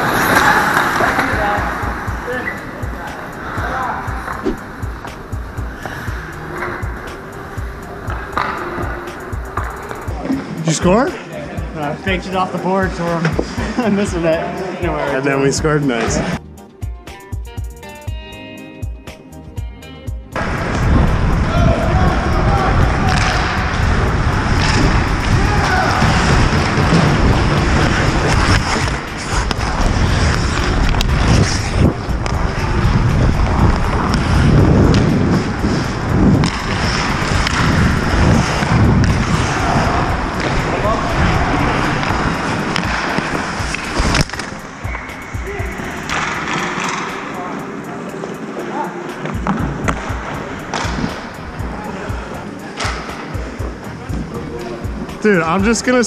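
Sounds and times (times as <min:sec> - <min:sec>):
skates scraping on ice: 0:00.0 - 0:11.2, 0:21.5 - 0:51.2
players calling: 0:00.0 - 0:16.4, 0:20.4 - 0:56.0
wind rumbling on microphone: 0:20.4 - 0:42.7.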